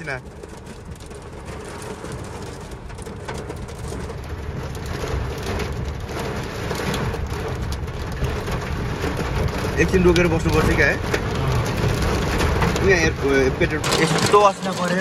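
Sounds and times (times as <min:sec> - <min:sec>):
heavy rain on car roof: 0:00.0 - 0:15.0
low road rumble: 0:00.0 - 0:15.0.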